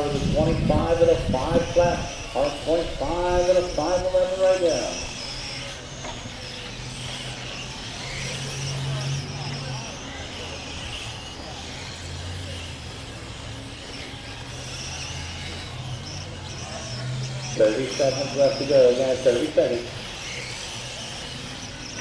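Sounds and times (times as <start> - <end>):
rc car motor whine: 0.0 - 22.0
steady low hum: 0.0 - 22.0.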